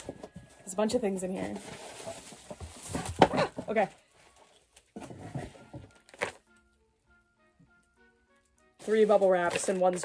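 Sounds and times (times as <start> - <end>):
plastic wrapping rustling: 0.0 - 6.6, 8.8 - 10.0
soft background music: 0.0 - 10.0.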